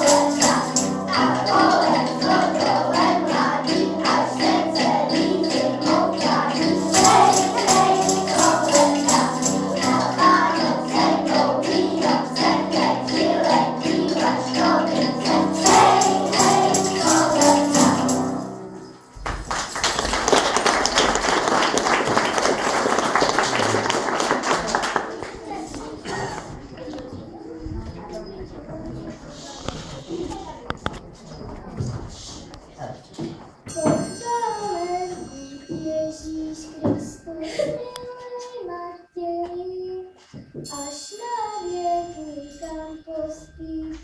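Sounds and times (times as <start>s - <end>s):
children singing: 0.0s - 18.4s
audience applauding: 19.2s - 25.6s.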